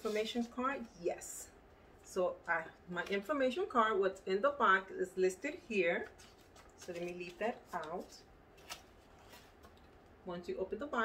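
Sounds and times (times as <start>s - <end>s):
cardboard rustling: 6.2s - 9.9s.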